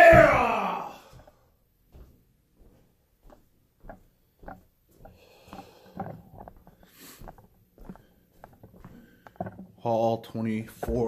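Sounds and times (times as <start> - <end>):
man breathing and sniffing: 4.4 - 9.8.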